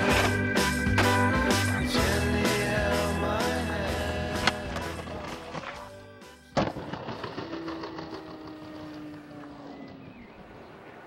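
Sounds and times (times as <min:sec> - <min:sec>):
skateboard rolling on concrete: 0:00.0 - 0:11.0.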